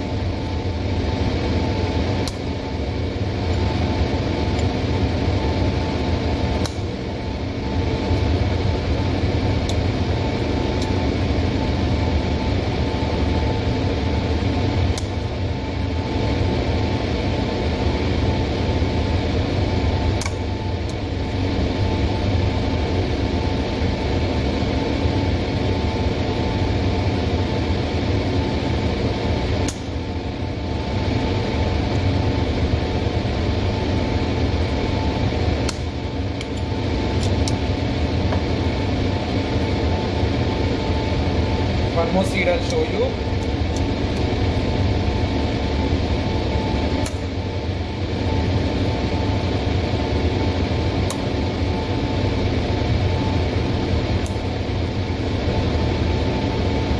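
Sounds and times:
electric fan running: 0.0s - 56.9s.

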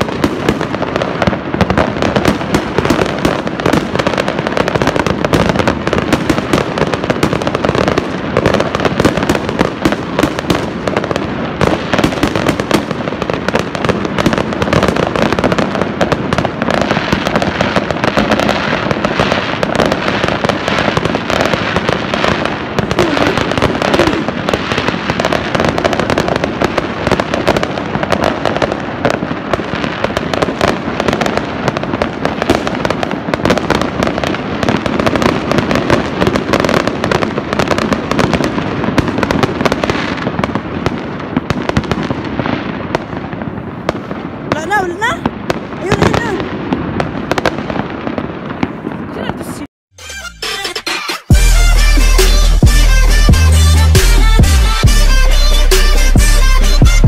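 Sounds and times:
fireworks and firecrackers bursting: 0.0s - 57.0s.

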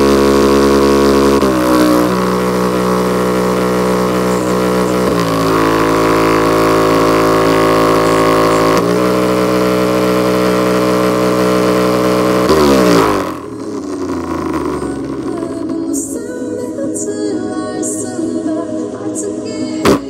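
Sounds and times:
speaker playing bass test tones: 0.0s - 18.1s, 19.7s - 20.0s.

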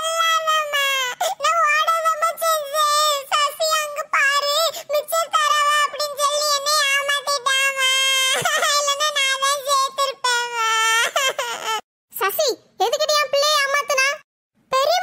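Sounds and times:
high-pitched cartoon voice: 0.0s - 15.0s.

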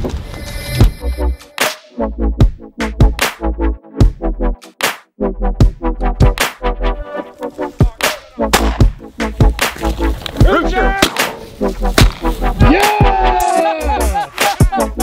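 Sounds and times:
electronic music with heavy bass: 0.7s - 15.0s
person calling out: 12.6s - 14.1s.

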